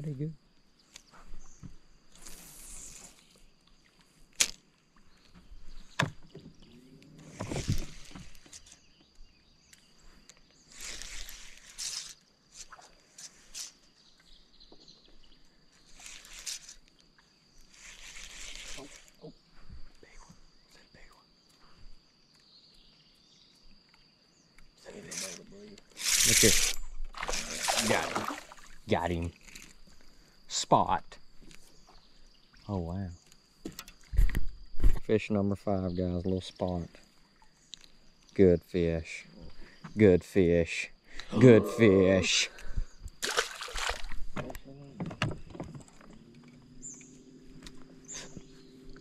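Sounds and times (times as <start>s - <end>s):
spinning reel being cranked: 26.0s - 26.8s.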